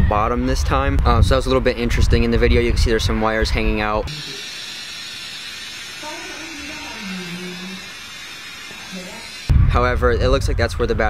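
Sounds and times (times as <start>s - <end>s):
steady hiss: 4.1s - 10.0s.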